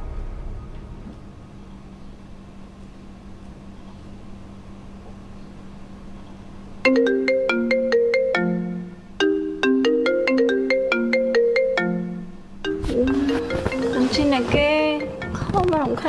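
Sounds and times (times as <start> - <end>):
faint low hum: 0.0 - 9.7
mobile phone melodic ringtone: 6.9 - 15.5.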